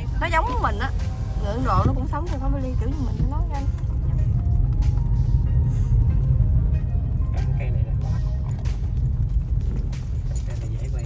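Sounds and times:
road and engine rumble in car: 0.0 - 11.0.

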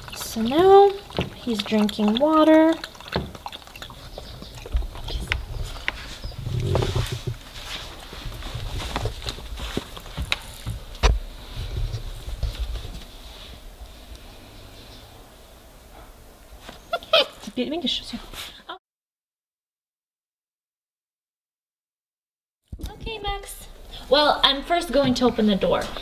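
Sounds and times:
puppy lapping water: 0.0 - 10.9.

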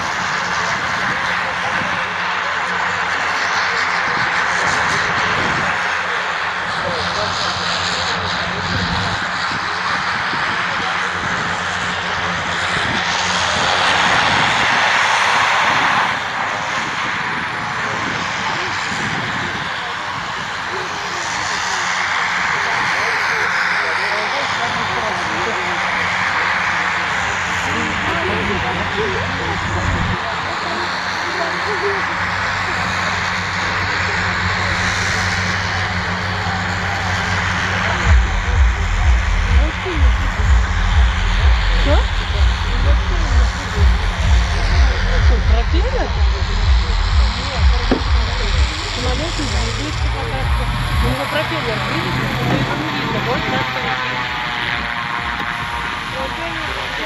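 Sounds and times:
radial aircraft engine running: 0.0 - 57.0
wind buffeting microphone: 4.1 - 6.0, 8.3 - 21.0.

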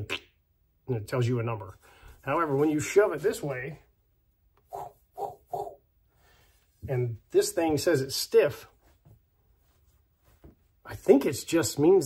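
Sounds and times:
man making mouth noises: 0.0 - 0.4, 4.6 - 5.8.

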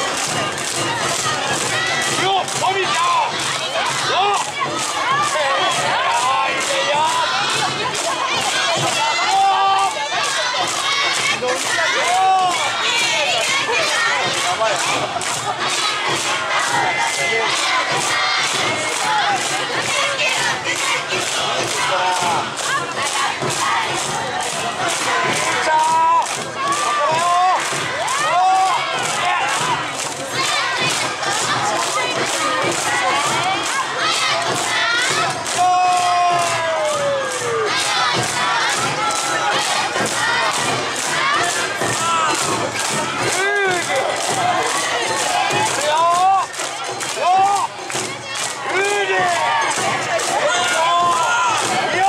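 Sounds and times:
steady percussion beat: 0.0 - 52.0
street crowd noise: 0.0 - 52.0
voices shouting chants: 0.0 - 52.0.

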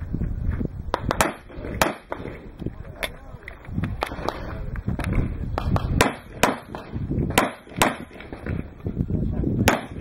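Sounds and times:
handgun shots: 6.0 - 8.2.

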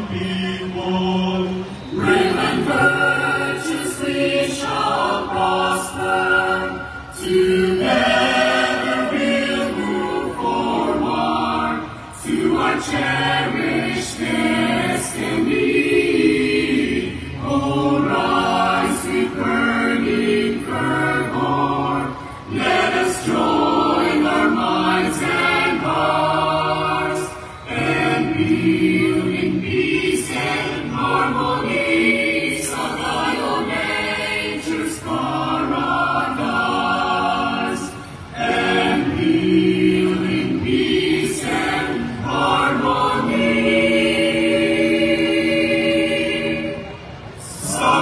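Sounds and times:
choir singing through sound system: 0.0 - 48.0.

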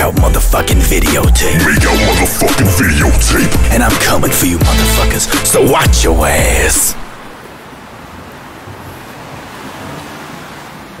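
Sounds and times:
low rumble: 0.0 - 7.1
steady rushing noise: 0.0 - 7.4.

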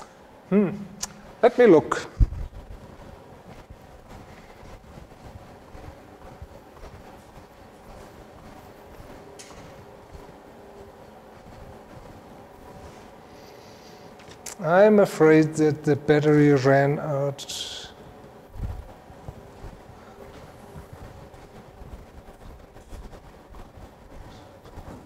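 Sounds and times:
faint hum: 0.0 - 25.0.

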